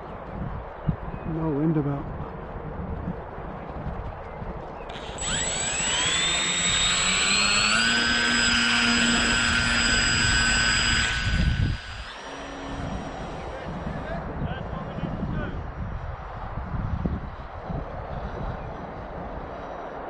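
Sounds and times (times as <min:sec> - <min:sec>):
electric motor propeller whine: 0:04.9 - 0:20.0.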